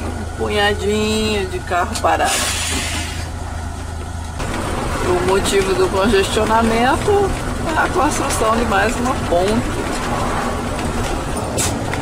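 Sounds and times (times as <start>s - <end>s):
engine and road noise rumble: 0.0s - 12.0s
short hiss: 2.3s - 3.3s.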